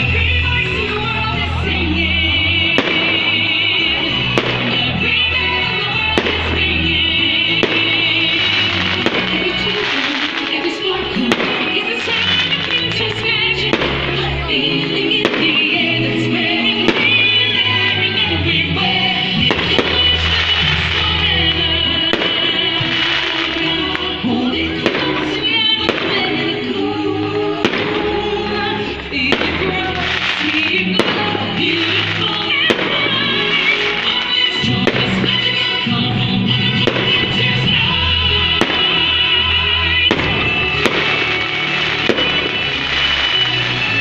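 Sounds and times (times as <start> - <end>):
fireworks bangs: 0.0 - 44.0.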